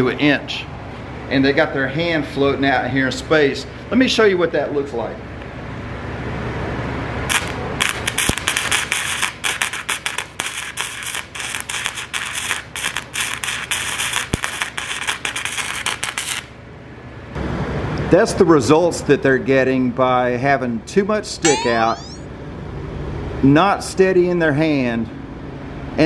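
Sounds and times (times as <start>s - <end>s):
welder arc crackling and popping: 7.3s - 16.3s.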